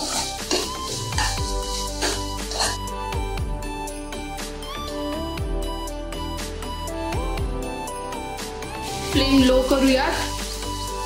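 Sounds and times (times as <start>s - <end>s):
metal spatula scraping a pan: 0.0s - 2.9s
background music with held notes: 0.0s - 11.0s
masala sizzling in oil: 8.8s - 11.0s.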